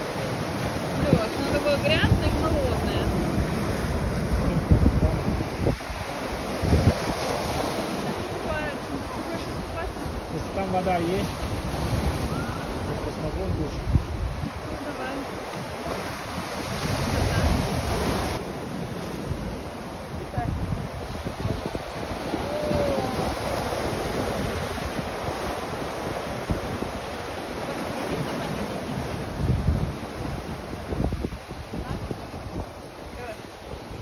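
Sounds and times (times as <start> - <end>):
waves breaking on rocky shore: 0.0 - 34.0
wind buffeting microphone: 0.0 - 34.0.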